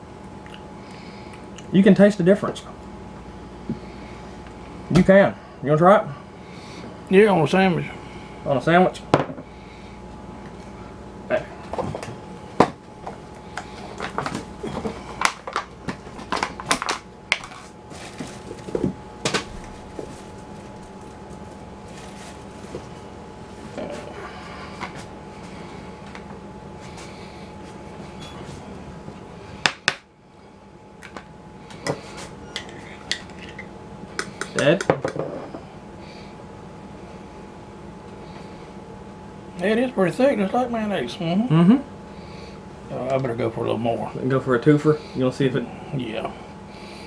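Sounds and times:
faint steady hum: 0.0 - 47.0.

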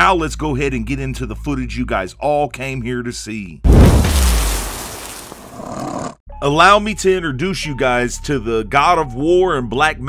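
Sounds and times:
deep boom: 3.7 - 5.0.

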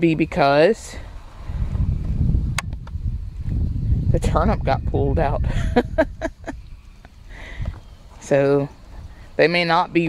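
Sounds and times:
wind buffeting microphone: 0.0 - 9.4.

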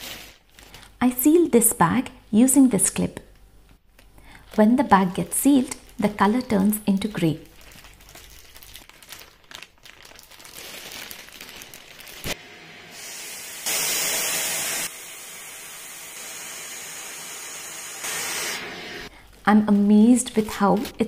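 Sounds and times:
plastic bag rustling: 0.0 - 1.0, 6.2 - 12.4, 19.1 - 21.0
vacuum cleaner sucking air: 12.3 - 19.1.

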